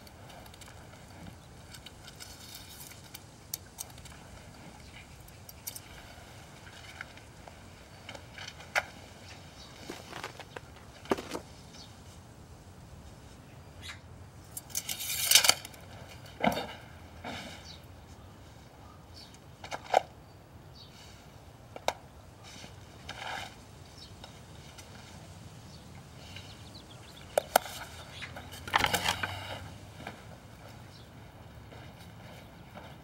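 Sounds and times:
faint steady background noise: 0.0s - 33.0s.

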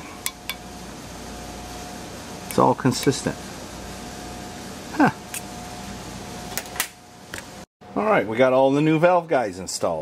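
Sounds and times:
person saying huh: 4.9s - 5.3s.

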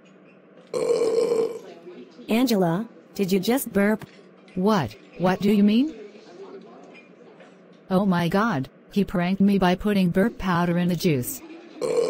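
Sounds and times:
cartoon burp: 0.7s - 1.6s, 11.8s - 12.0s.

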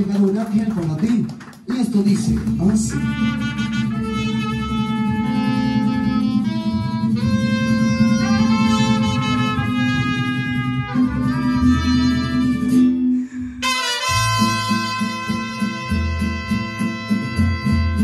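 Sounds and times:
mariachi band playing: 0.0s - 18.0s.

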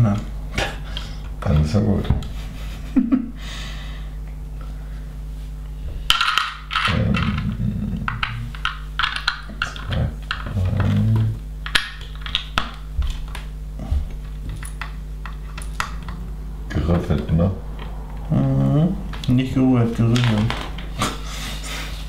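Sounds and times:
plastic bricks clicking and rattling: 6.1s - 13.4s.

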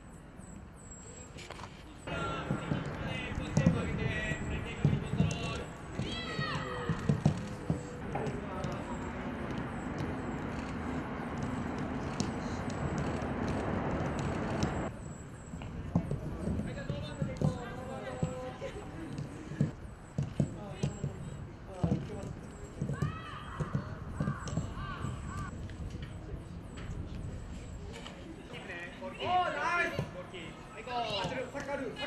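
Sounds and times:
players calling out: 2.0s - 14.9s, 15.8s - 25.6s, 26.3s - 32.0s
football kick thuds: 2.1s - 10.2s, 19.1s - 25.5s.

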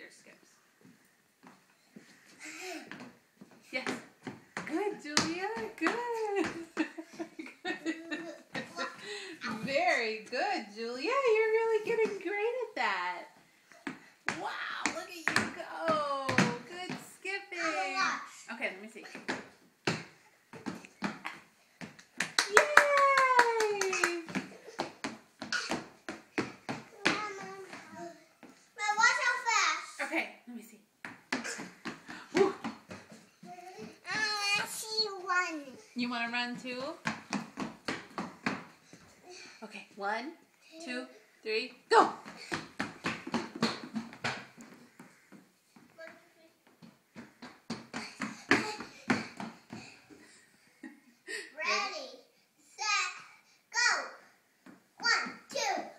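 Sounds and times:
child's feet thudding on wood floor: 0.8s - 9.8s, 13.3s - 18.0s, 19.1s - 22.4s, 23.9s - 28.6s, 31.0s - 35.0s, 36.3s - 39.2s, 42.0s - 50.4s
small children's voices: 13.7s - 15.6s, 17.3s - 18.5s, 26.7s - 30.1s, 33.1s - 36.0s, 38.9s - 39.6s, 45.8s - 50.5s, 51.3s - 55.9s.

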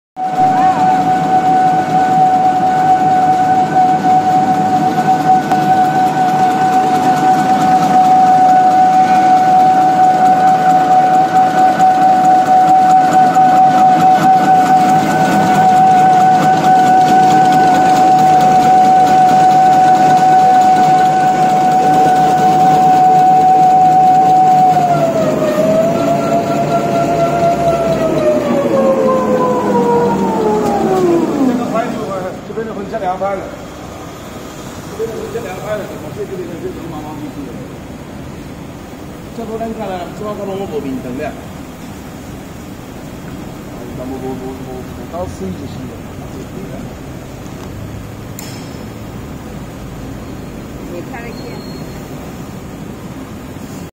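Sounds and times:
mechanical clatter: 0.2s - 51.3s
machine motor whine: 0.2s - 53.8s.

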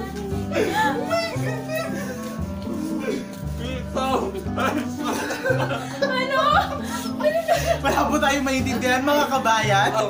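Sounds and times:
voices: 0.0s - 9.4s
background music with bass line: 0.0s - 10.0s.

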